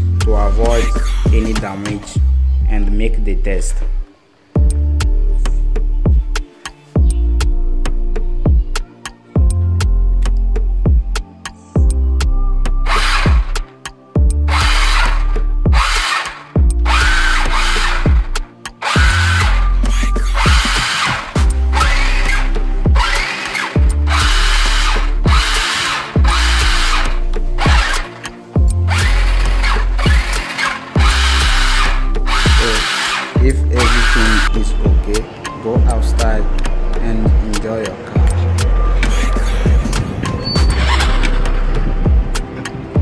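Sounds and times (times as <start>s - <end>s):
background music with bass beat: 0.0s - 43.0s
toy car motors whirring: 12.8s - 13.7s, 14.5s - 35.2s, 40.6s - 41.6s.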